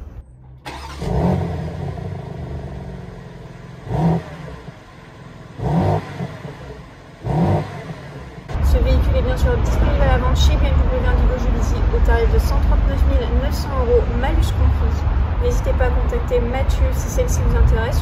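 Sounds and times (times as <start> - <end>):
car engine revving: 0.0 - 18.0
car engine starting and idling: 0.0 - 18.0
low engine rumble: 0.0 - 18.0.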